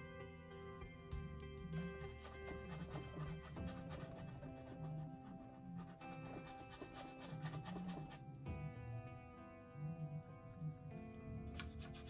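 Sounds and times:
background music: 0.0 - 12.0
paintbrush scrubbing on canvas: 1.8 - 8.2.

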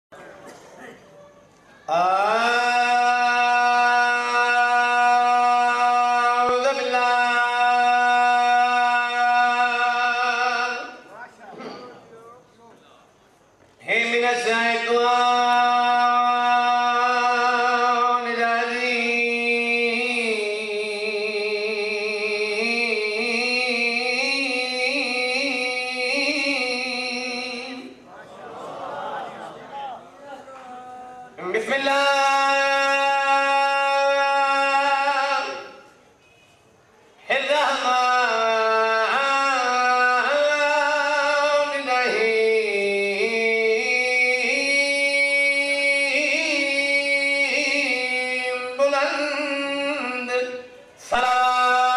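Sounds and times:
man singing a long note: 1.9 - 11.0, 13.9 - 28.0.

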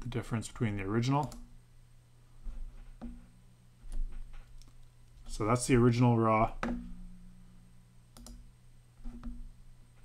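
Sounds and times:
faint electrical hum: 0.0 - 10.0
computer mouse clicking: 1.2 - 1.5, 3.9 - 5.2, 8.2 - 8.4.

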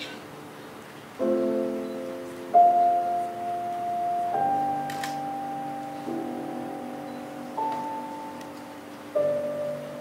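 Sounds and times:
slow quiet piano music: 0.0 - 10.0.

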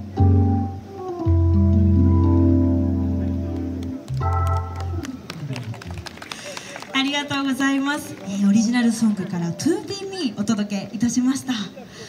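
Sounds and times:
electric organ song: 0.0 - 5.6
audience clapping: 3.5 - 8.4.

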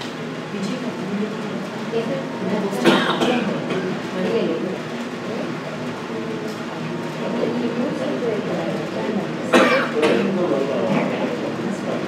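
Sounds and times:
loud cough: 2.8 - 3.5, 9.5 - 10.4.

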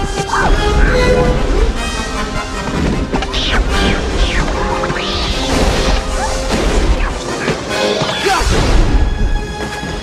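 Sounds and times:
dramatic orchestral music: 0.0 - 10.0.

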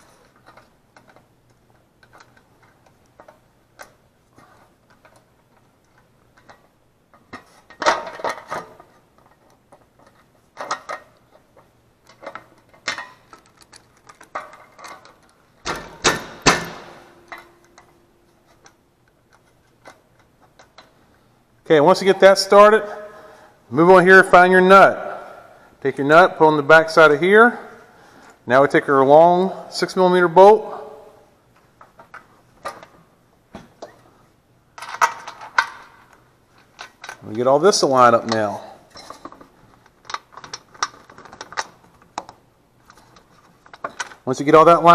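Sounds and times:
small parts clicking and knocking: 0.0 - 21.0, 34.8 - 37.4, 38.2 - 44.3.

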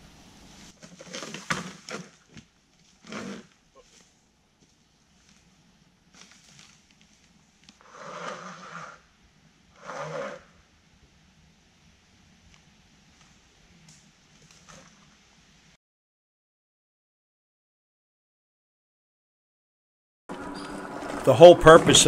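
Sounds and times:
leaf litter rustling: 0.5 - 7.7.

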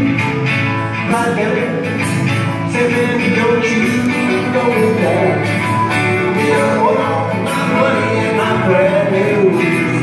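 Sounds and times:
strummed acoustic guitars: 0.0 - 10.0
person singing: 1.0 - 10.0.

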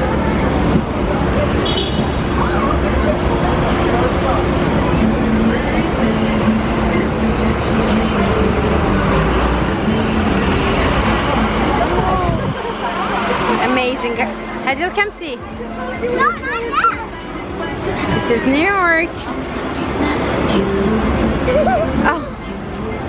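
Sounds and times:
background voices: 0.0 - 23.0
heavy vehicle engine humming: 0.0 - 23.0.

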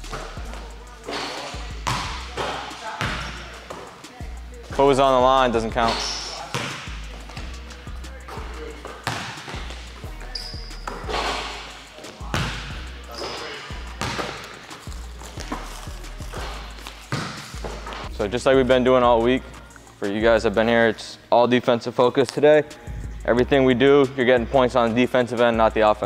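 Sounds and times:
background music with heavy bass: 0.0 - 21.0, 22.6 - 26.0
basketballs bouncing on hardwood: 1.7 - 3.8, 6.4 - 7.5, 8.3 - 9.8, 12.3 - 13.3, 14.0 - 14.5, 16.3 - 18.1.

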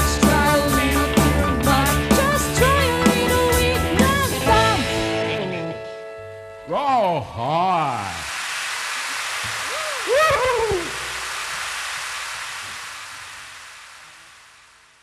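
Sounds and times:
crowd applauding: 7.8 - 13.5
crowd whooping: 9.4 - 11.8.

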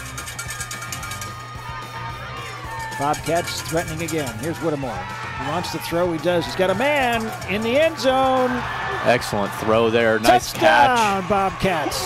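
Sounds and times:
fast ticking beat: 0.0 - 1.6, 2.6 - 8.7.

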